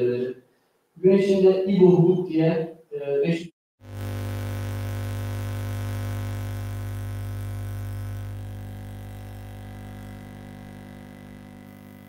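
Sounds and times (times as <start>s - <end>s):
low electronic hum: 3.8s - 12.0s.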